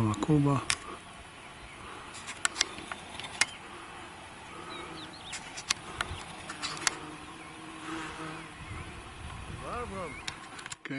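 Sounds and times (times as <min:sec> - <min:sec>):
sharp clicks: 0:00.1 - 0:00.9, 0:02.2 - 0:03.6, 0:05.3 - 0:07.0, 0:10.2 - 0:10.9.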